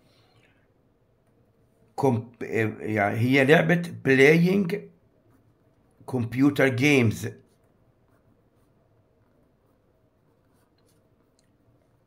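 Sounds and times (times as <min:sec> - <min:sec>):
pen scratching on paper: 0:07.4 - 0:12.0.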